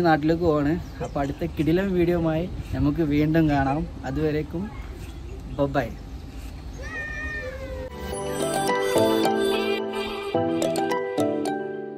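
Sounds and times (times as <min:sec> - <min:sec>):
high-pitched animal call: 0:06.8 - 0:11.0.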